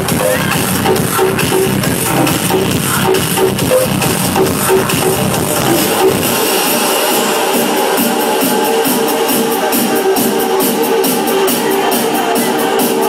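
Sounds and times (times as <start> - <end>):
electronic dance music: 0.0 - 13.0.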